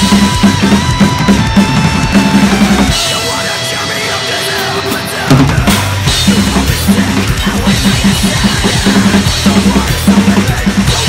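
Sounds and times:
drum kit played fast: 0:00.0 - 0:11.0
metalcore backing track: 0:00.0 - 0:11.0.

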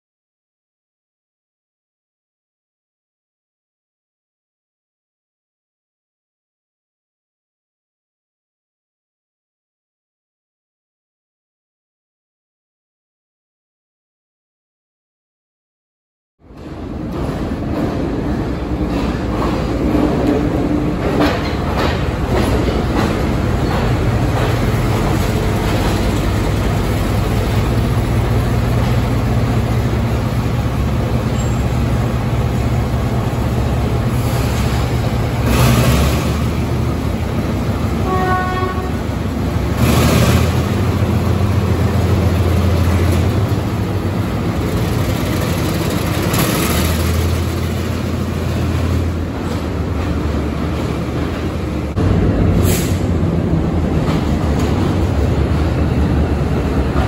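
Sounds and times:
diesel locomotive engine drone: 0:16.4 - 0:57.0.

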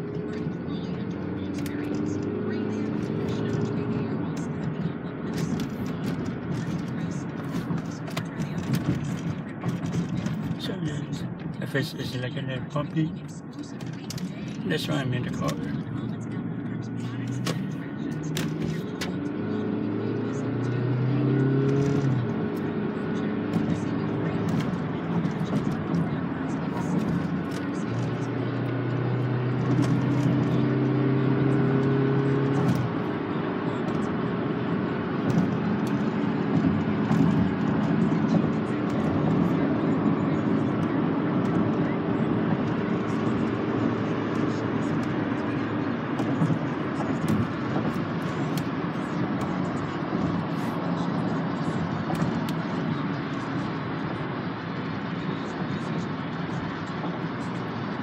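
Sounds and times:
road and engine noise: 0:00.0 - 0:58.0
song on car radio: 0:00.0 - 0:58.0.

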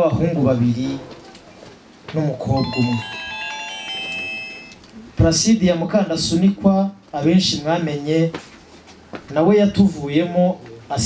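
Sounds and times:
chord of electronic tones: 0:02.6 - 0:04.8.

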